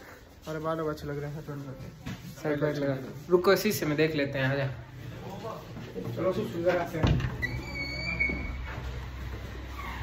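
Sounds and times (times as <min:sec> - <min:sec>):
high squeak: 0:07.4 - 0:08.7.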